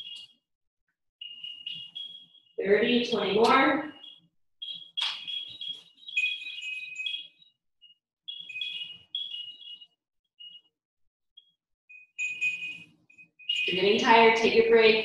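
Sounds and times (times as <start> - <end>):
electronic toy beeping tune: 11.9 - 14.4.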